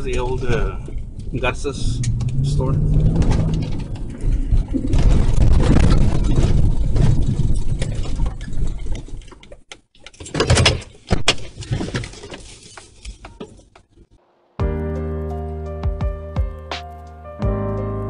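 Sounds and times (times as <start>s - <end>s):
car rumbling over rough ground: 0.0s - 9.7s
music: 14.6s - 18.0s.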